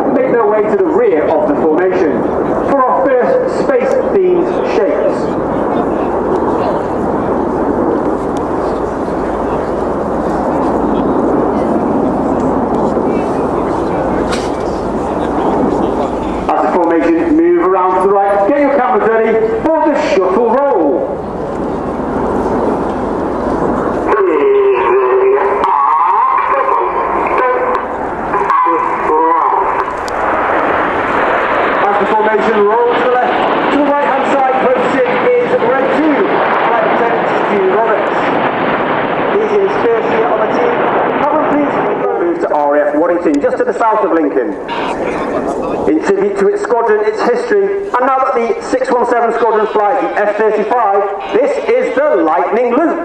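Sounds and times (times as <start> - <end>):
indistinct voices: 0.0 - 30.3, 39.3 - 53.0
jets flying past: 0.0 - 53.0.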